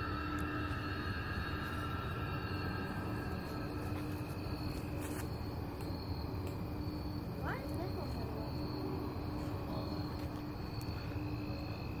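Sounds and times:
low rumble: 0.0 - 7.2
night insects trilling: 0.0 - 12.0.

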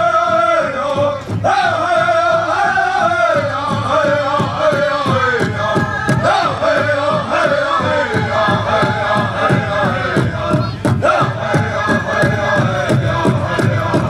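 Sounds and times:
group singing in unison: 0.0 - 14.0
steady drumbeat: 0.0 - 14.0.

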